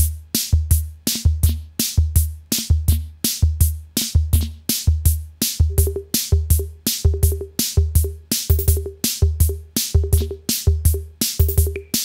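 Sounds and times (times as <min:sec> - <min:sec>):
drum machine beat: 0:00.0 - 0:12.0.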